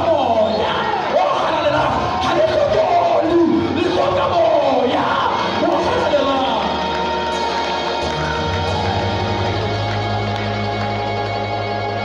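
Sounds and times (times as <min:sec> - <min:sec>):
church keyboard chords: 0:05.4 - 0:12.0.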